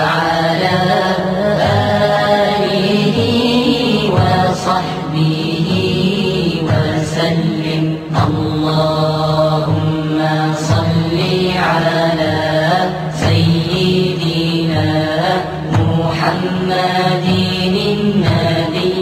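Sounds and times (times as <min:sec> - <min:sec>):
person chanting with ornamented runs: 0:00.0 - 0:19.0
steady low drone: 0:00.0 - 0:19.0.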